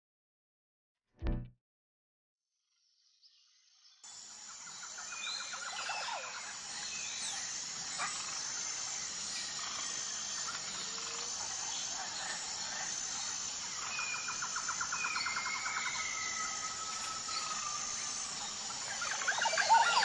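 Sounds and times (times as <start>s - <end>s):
insect hum: 3.6s - 20.0s.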